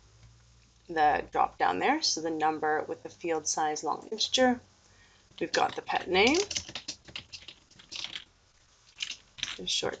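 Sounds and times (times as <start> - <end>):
typing on computer keyboard: 5.4 - 8.3.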